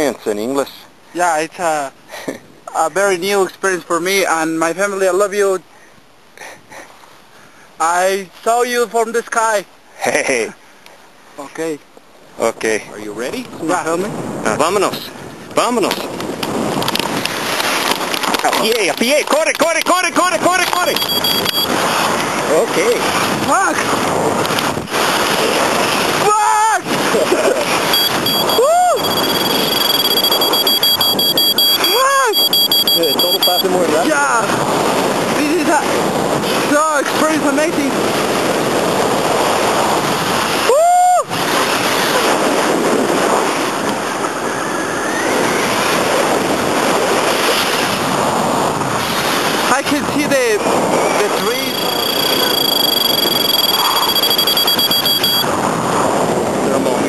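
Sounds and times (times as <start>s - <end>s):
wind rushing over microphone: 10.5s - 57.0s
thin high tones: 20.8s - 21.7s, 27.9s - 33.8s, 51.3s - 55.5s.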